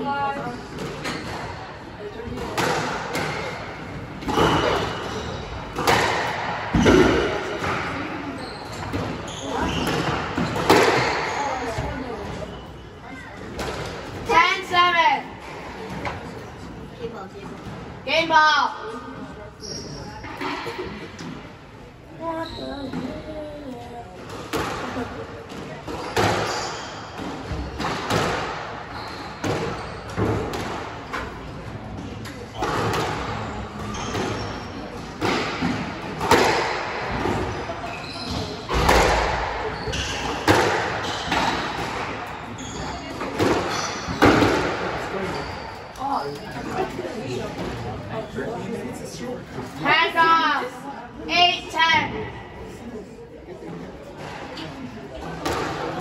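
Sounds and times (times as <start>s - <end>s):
squash ball hits echoing: 2.2s - 12.2s, 24.3s - 31.3s, 32.4s - 46.0s, 55.2s - 56.0s
squash ball cracks echoing: 5.7s - 8.1s, 35.2s - 37.5s.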